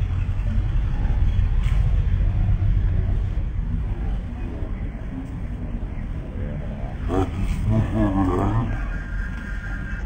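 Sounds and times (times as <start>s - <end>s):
crowd rumble: 0.0s - 10.0s
men calling out: 7.0s - 9.1s.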